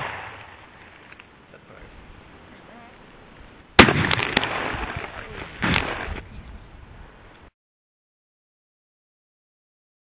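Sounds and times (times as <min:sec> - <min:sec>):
rifle shot: 0:00.0 - 0:00.6, 0:03.8 - 0:06.1
loud burst: 0:03.8 - 0:06.1.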